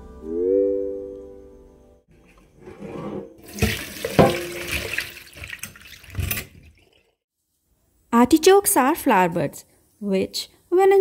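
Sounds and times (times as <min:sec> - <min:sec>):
water pouring into metal sink: 0:03.4 - 0:07.2.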